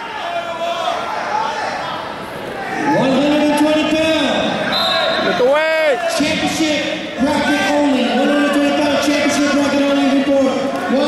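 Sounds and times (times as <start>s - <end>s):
spectators yelling: 0.0s - 11.0s.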